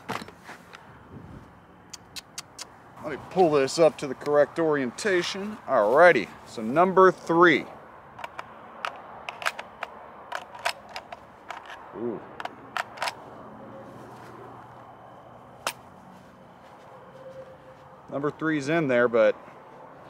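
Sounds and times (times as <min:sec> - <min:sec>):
rifle magazine clicking into well: 0:08.2 - 0:11.8.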